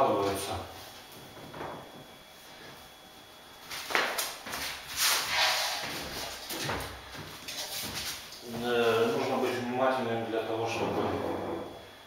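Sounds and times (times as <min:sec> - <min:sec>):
man talking: 0:00.0 - 0:00.7, 0:08.4 - 0:11.8.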